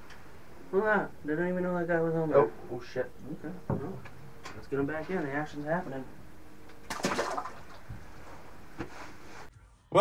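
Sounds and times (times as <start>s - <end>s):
fish splashing in water: 6.8s - 7.9s.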